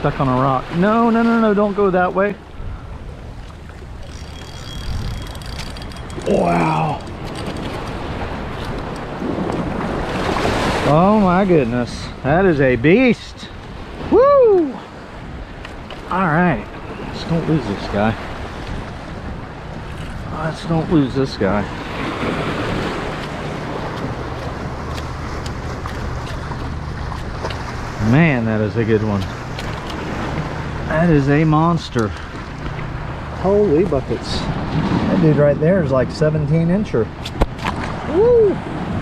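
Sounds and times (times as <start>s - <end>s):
waves washing over rocks: 6.1s - 12.3s, 19.6s - 35.7s
low engine drone: 21.7s - 38.6s.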